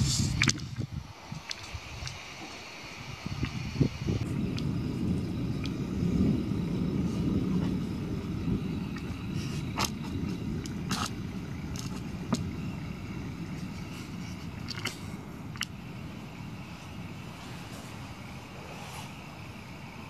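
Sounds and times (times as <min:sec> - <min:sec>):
distant thunder rumbling: 0:03.0 - 0:20.0.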